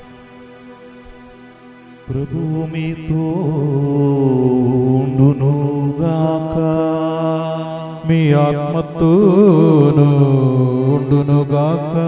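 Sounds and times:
held keyboard drone: 0.0 - 7.3
liturgical chant singing: 0.0 - 12.0.

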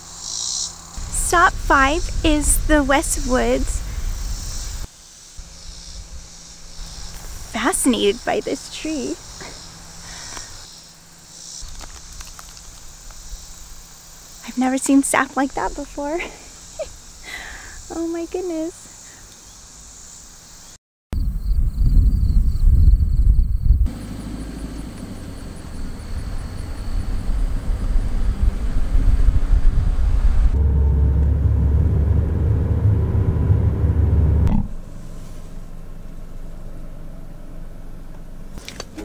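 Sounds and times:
low noisy rumble: 25.0 - 39.0.

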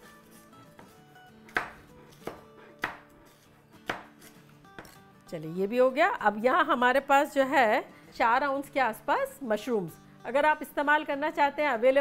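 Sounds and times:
knife striking cutting board: 0.3 - 3.1, 3.8 - 5.0.

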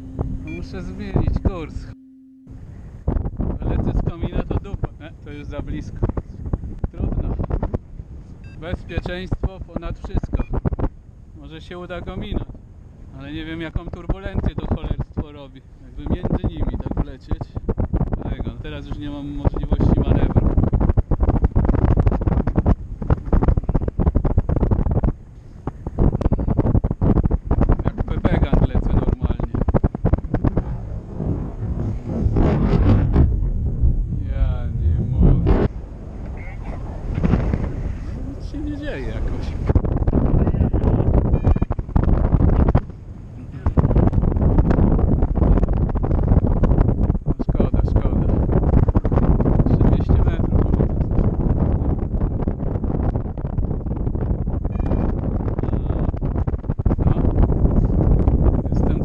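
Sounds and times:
gusty wind rumble on microphone: 0.0 - 59.0.

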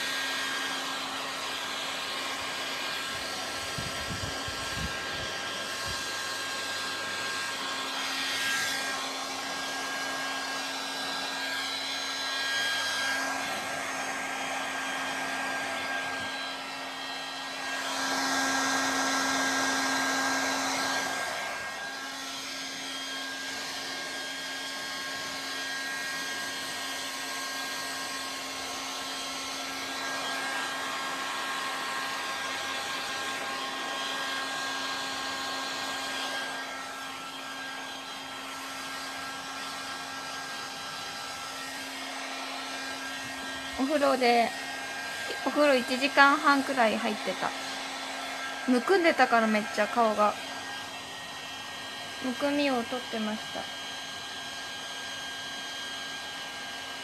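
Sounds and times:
hair dryer blowing: 0.0 - 57.0.

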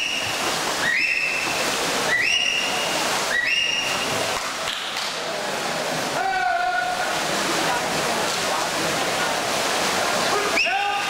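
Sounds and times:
echoing crowd noise: 0.0 - 11.0
swimmers splashing water: 0.0 - 11.0.

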